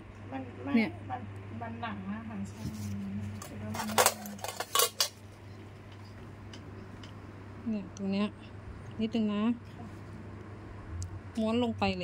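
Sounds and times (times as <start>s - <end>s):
metal instruments clinking on tray: 3.4s - 5.2s.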